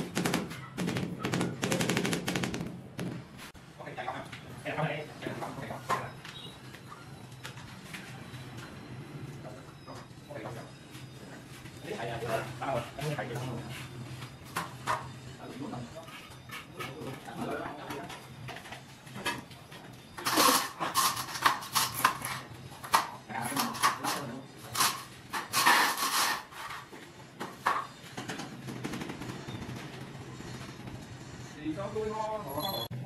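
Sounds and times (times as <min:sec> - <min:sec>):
hand tools scraping on tiles: 0:20.2 - 0:27.0.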